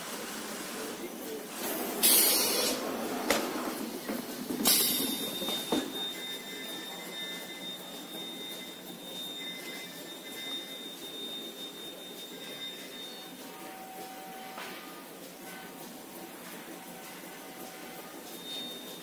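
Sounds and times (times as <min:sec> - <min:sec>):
continuous mechanical hum: 0:00.0 - 0:19.0
machine high-pitched whine: 0:01.2 - 0:19.0
short hissing burst: 0:02.0 - 0:02.9.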